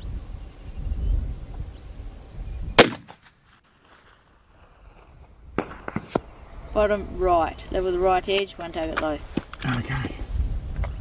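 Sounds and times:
rifle shot echo: 2.8s - 4.4s, 5.5s - 6.4s.

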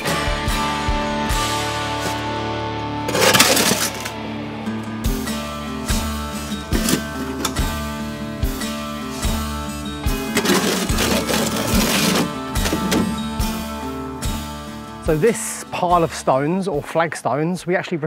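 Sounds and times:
background music with beat: 0.0s - 16.9s
shovel scraping mortar in wheelbarrow: 3.0s - 4.2s, 6.6s - 7.7s, 10.1s - 13.4s.

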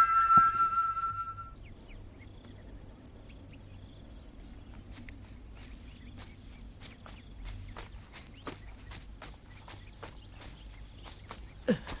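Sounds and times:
flute melody: 0.0s - 1.6s
insects chirping: 0.0s - 12.0s.

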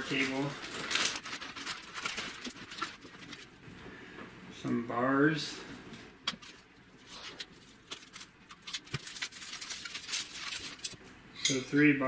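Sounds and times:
cables handled in cardboard box: 0.0s - 3.6s, 6.3s - 11.0s.

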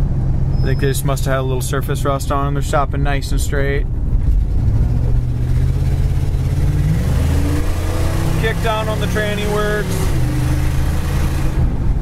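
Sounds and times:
car engine drone while driving: 0.0s - 12.0s.

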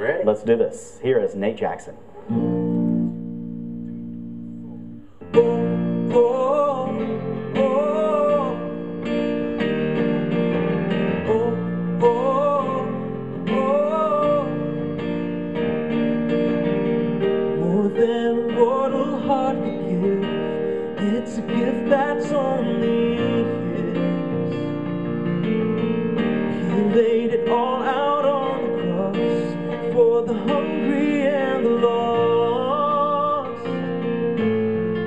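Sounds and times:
electric guitar: 2.0s - 35.0s
keyboard chords: 2.0s - 35.0s.

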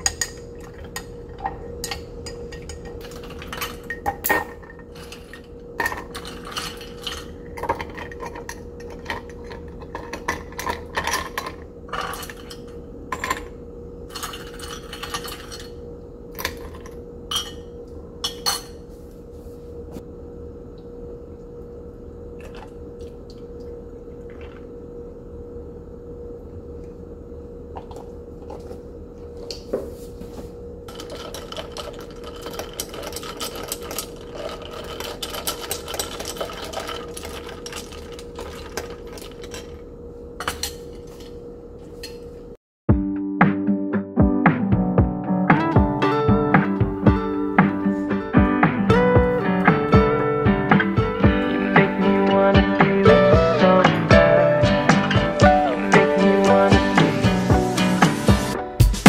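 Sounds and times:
faint steady hum: 0.0s - 42.6s.

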